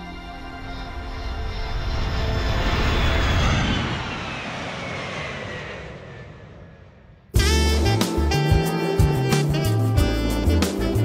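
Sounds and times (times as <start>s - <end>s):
faint falling whine: 0.0s - 7.3s
whoosh of passing aircraft: 0.5s - 7.4s.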